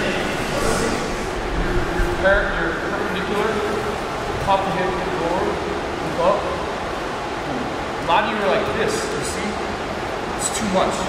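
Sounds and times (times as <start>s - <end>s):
indistinct voices in a hall: 0.0s - 11.0s
steady background hum: 0.0s - 11.0s.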